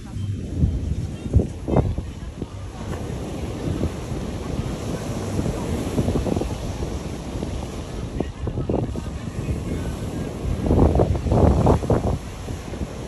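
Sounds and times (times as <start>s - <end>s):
surf washing on beach: 0.0s - 13.0s
wind buffeting microphone: 0.0s - 13.0s.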